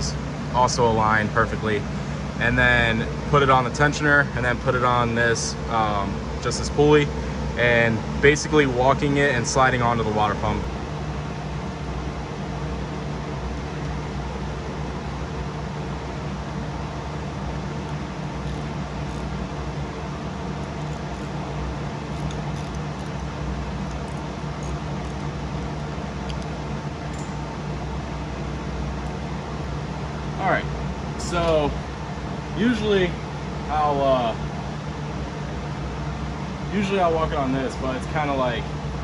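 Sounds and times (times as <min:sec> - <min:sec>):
fan humming and rushing: 0:00.0 - 0:39.0.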